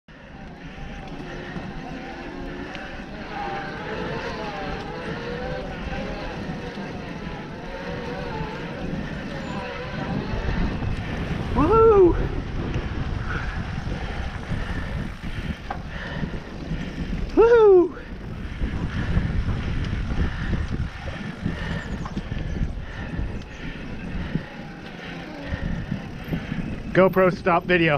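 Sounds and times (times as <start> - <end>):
electric bike motor whining: 0.1 - 27.9
tyres on dirt trail: 0.1 - 27.9
wind rumble: 0.1 - 27.9.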